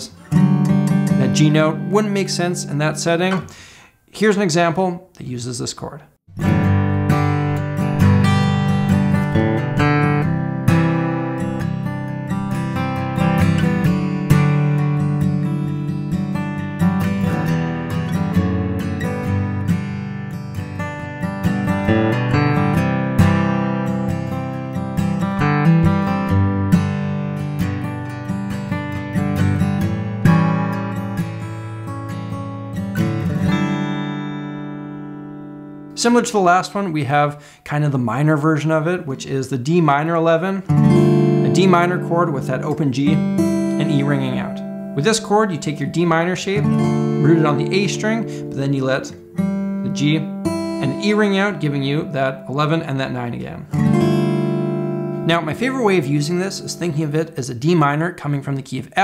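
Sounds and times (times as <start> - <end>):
acoustic guitar chords: 0.0 - 4.7, 6.3 - 39.0, 39.6 - 59.0.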